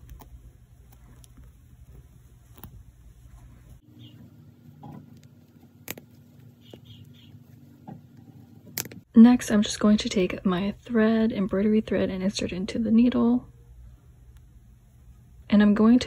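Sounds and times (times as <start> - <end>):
fingers handling yarn toy: 0.0 - 9.0.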